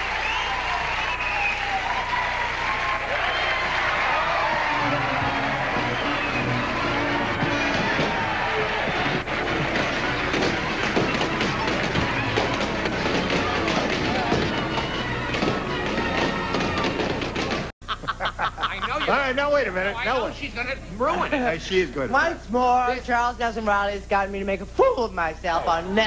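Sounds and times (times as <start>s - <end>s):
audience cheering and clapping: 0.0s - 17.7s
crowd of voices: 0.0s - 17.7s
music: 0.3s - 17.7s.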